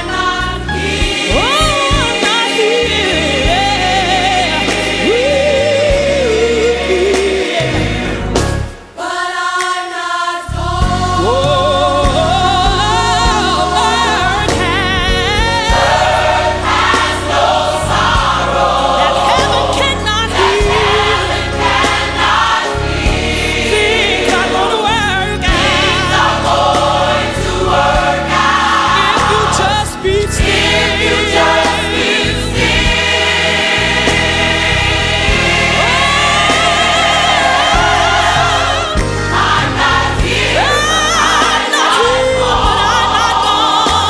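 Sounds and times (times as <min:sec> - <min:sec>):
instrumental backing with bass: 0:00.0 - 0:09.2, 0:10.5 - 0:44.0
gospel choir singing: 0:00.0 - 0:44.0.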